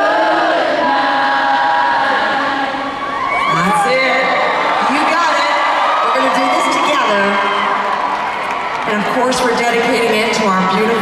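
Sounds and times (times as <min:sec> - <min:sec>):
crowd singing held notes: 0:00.0 - 0:03.2.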